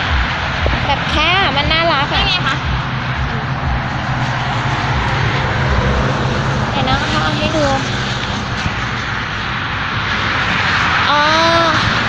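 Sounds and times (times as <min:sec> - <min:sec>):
low hum: 0:00.0 - 0:12.0
rushing engine drone: 0:00.0 - 0:12.0
woman speaking: 0:00.7 - 0:02.7, 0:06.8 - 0:07.9, 0:11.1 - 0:12.0.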